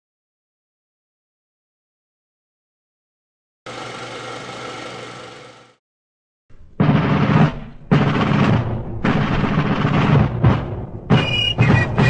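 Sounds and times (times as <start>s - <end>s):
film projector whirr and rattle: 3.7s - 5.8s.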